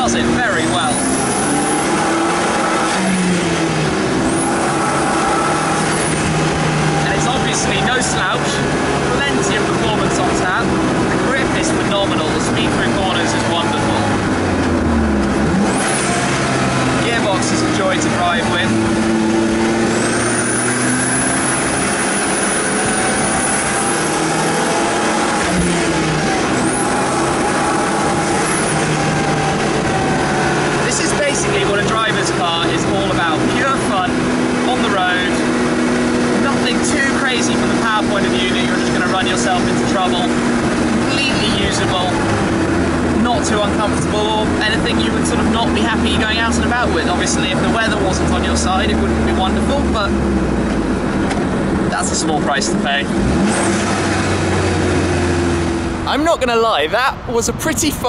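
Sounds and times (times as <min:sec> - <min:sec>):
car engine on the road: 0:00.0 - 0:58.0.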